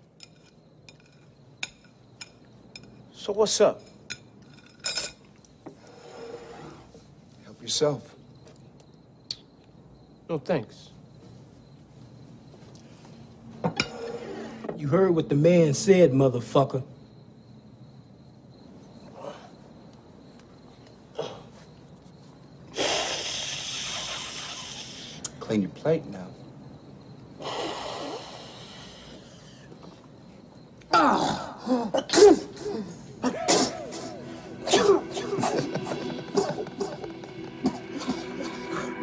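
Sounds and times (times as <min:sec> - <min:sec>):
cutlery and glass clinking: 0:00.1 - 0:03.1, 0:03.7 - 0:05.4
loud hissing: 0:22.7 - 0:25.4.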